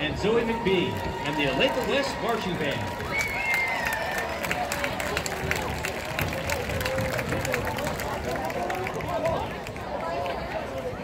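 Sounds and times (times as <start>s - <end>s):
crowd chatter: 0.0s - 11.0s
scattered hand claps: 2.7s - 10.4s.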